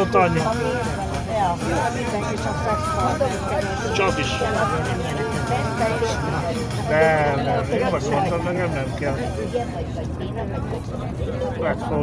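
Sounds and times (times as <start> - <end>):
bus engine and road drone: 0.0 - 12.0
people talking: 0.0 - 12.0.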